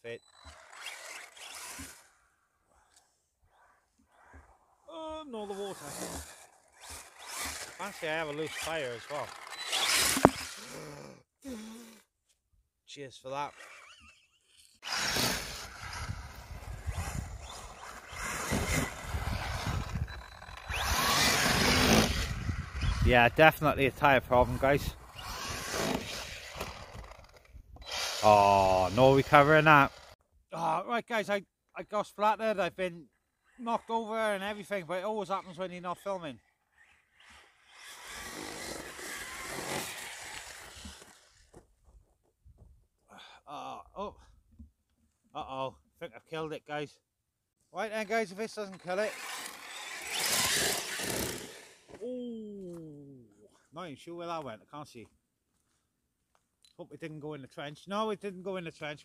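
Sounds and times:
rc truck motor whining: 0:00.0 - 0:04.8, 0:05.4 - 0:12.1, 0:13.4 - 0:23.4, 0:24.0 - 0:30.2, 0:35.4 - 0:41.6, 0:48.5 - 0:52.0
wind noise: 0:15.7 - 0:25.0.

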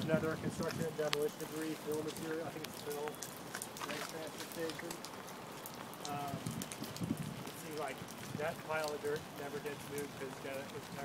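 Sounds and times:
light rain on water: 0:00.0 - 0:11.0.

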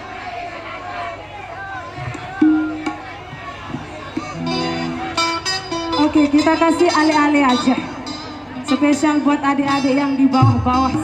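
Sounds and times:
faint crowd voices: 0:00.0 - 0:11.0
live band held note: 0:01.7 - 0:11.0
band chord: 0:04.2 - 0:11.0.

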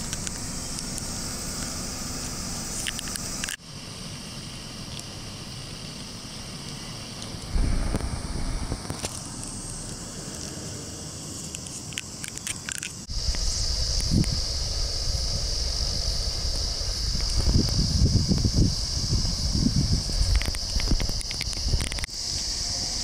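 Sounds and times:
wind rumbling on microphone: 0:07.3 - 0:10.7, 0:13.1 - 0:23.0
high-pitched buzz: 0:07.5 - 0:10.1.

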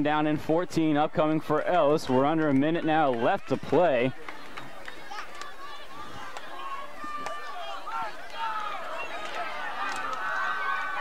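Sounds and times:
crowd shouting and cheering: 0:01.2 - 0:11.0.

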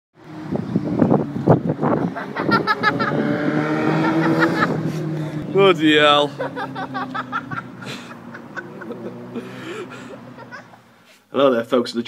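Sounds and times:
person laughing: 0:02.1 - 0:03.3, 0:04.0 - 0:05.3, 0:06.3 - 0:10.9
steady low engine hum: 0:04.6 - 0:11.1.

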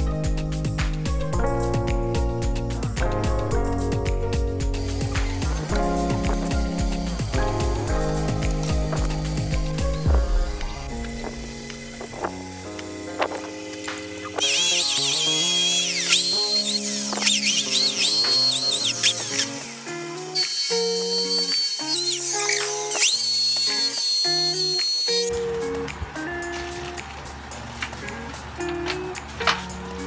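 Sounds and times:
background music: 0:00.0 - 0:30.0
electric drill whining: 0:09.0 - 0:25.3.

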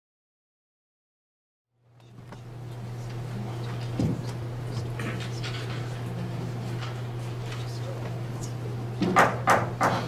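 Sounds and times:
low electrical hum: 0:01.8 - 0:10.0
audience rustling: 0:02.0 - 0:09.0.

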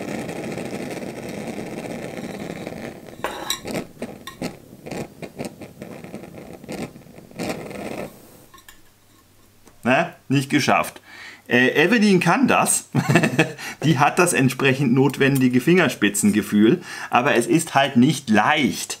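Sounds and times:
gas hissing from stove burner: 0:00.0 - 0:14.5.

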